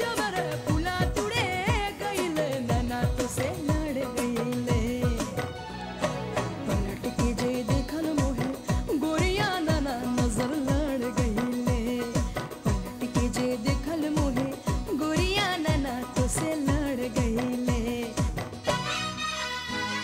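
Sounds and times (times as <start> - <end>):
steady drum beat: 0.0 - 19.1
woman singing: 0.0 - 20.0.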